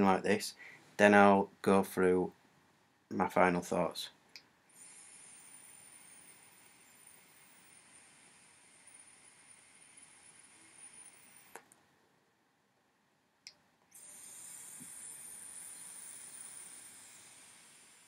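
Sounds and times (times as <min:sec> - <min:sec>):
thin high whine: 0:04.7 - 0:11.6, 0:14.0 - 0:18.0
vape hissing: 0:04.7 - 0:11.6, 0:13.9 - 0:18.0.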